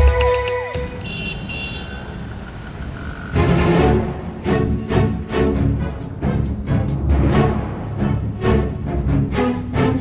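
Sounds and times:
city road traffic: 0:00.0 - 0:10.0
background music with falling sweeps: 0:02.6 - 0:10.0.

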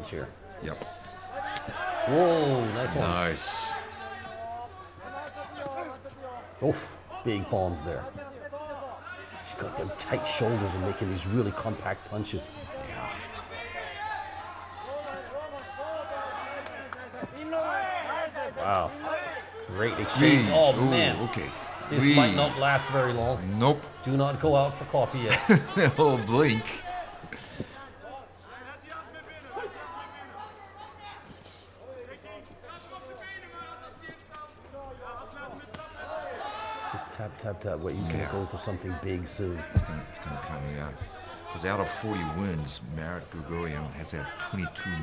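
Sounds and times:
voices shouting: 0:01.1 - 0:06.1, 0:08.7 - 0:27.4, 0:35.0 - 0:37.3.

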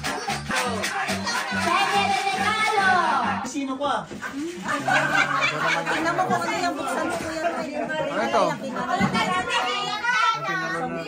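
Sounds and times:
people chattering: 0:00.0 - 0:11.0.

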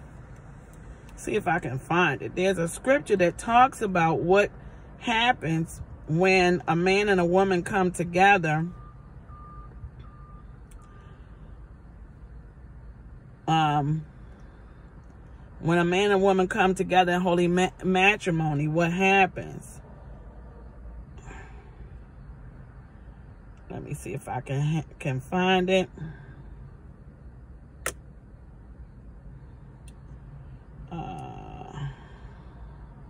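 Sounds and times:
car interior hum: 0:00.0 - 0:33.0
low steady rumble: 0:00.0 - 0:33.0
small click: 0:27.8 - 0:28.0.

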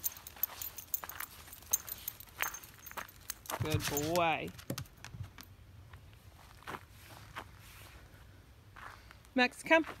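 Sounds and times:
footsteps crunching on gravel: 0:00.0 - 0:04.4, 0:05.9 - 0:08.0, 0:09.8 - 0:10.0.

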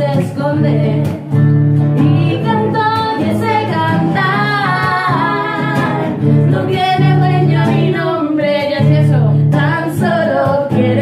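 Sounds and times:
women singing together: 0:00.0 - 0:01.4, 0:02.0 - 0:11.0
strummed acoustic guitar: 0:00.0 - 0:11.0.

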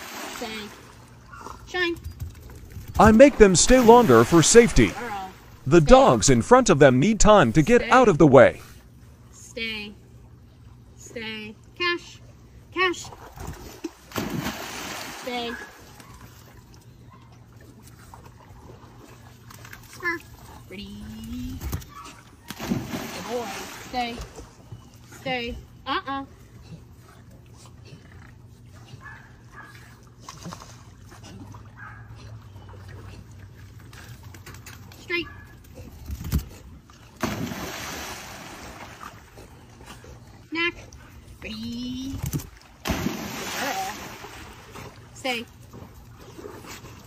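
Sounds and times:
low steady hum: 0:00.0 - 0:47.0
dog splashing into pool: 0:01.8 - 0:05.6, 0:13.3 - 0:16.5, 0:21.5 - 0:24.4, 0:37.1 - 0:39.3, 0:42.2 - 0:45.0
water splashing: 0:02.9 - 0:08.6, 0:13.9 - 0:15.8, 0:22.5 - 0:24.0, 0:37.2 - 0:39.4, 0:42.6 - 0:45.1.

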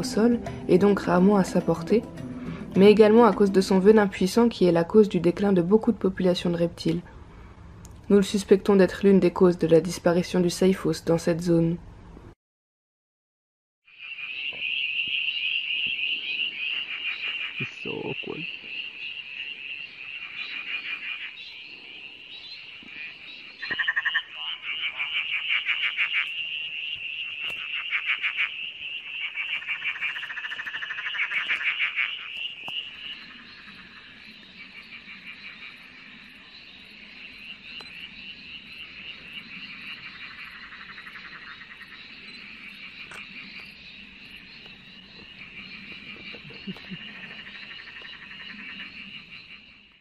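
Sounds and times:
tree frogs pulsed calls: 0:00.0 - 0:11.5, 0:13.9 - 0:50.0
high-pitched frog chorus: 0:13.9 - 0:50.0.

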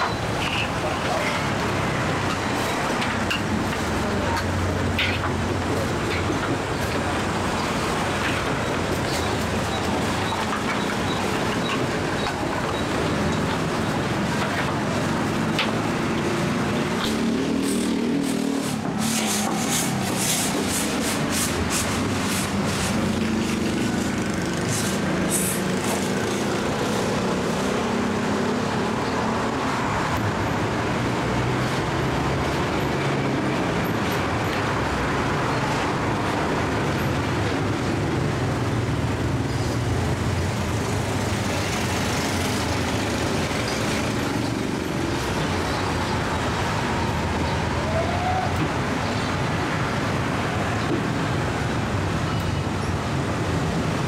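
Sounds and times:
street traffic: 0:00.0 - 0:54.0.

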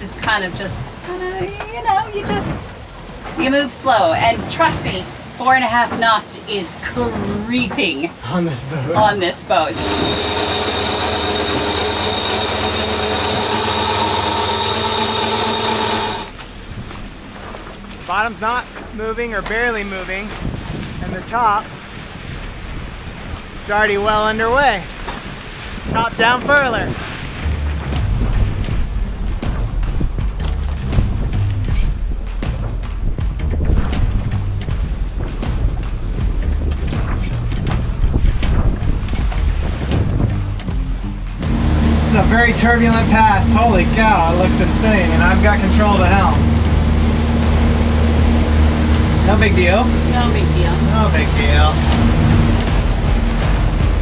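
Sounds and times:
electric winch motor whine: 0:09.7 - 0:16.4, 0:41.4 - 0:54.0
wind noise on microphone: 0:20.1 - 0:54.0
music with bass and beat: 0:27.5 - 0:54.0.

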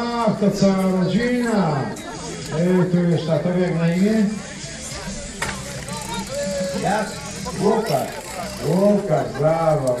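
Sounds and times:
soft voices and chatter: 0:00.0 - 0:10.0.

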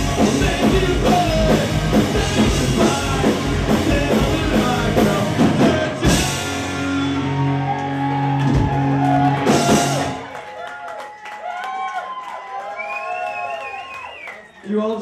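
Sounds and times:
live rock band playing: 0:00.0 - 0:10.4
audience cheering: 0:06.3 - 0:15.0
person whistling: 0:12.8 - 0:14.6.

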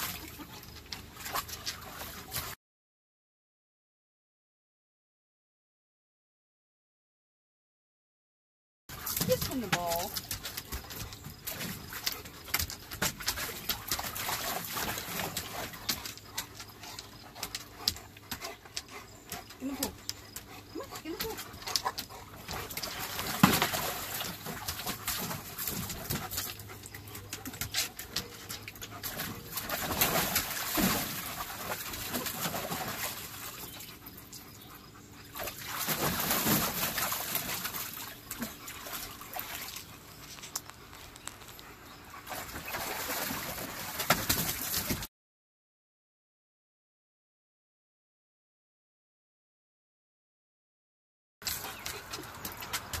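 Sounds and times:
dog splashing in water: 0:08.9 - 0:16.2, 0:20.7 - 0:26.7, 0:27.3 - 0:33.8, 0:35.4 - 0:39.9, 0:42.2 - 0:45.1.

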